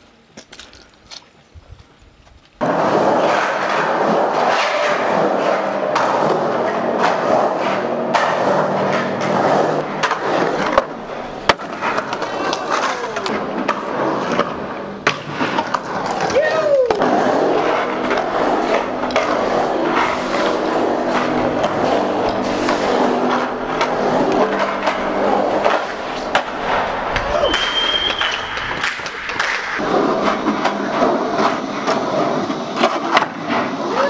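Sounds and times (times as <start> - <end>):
bike tyres rolling: 0.0 - 34.0.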